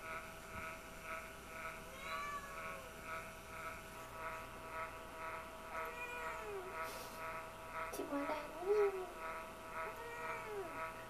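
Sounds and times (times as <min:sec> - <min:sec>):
cat meowing: 0:01.9 - 0:02.9, 0:05.8 - 0:06.7, 0:09.8 - 0:10.8.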